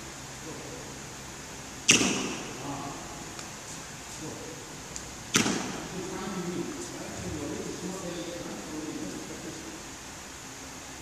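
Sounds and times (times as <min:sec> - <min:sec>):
racket striking shuttlecock: 0:01.9 - 0:02.6, 0:05.3 - 0:05.9.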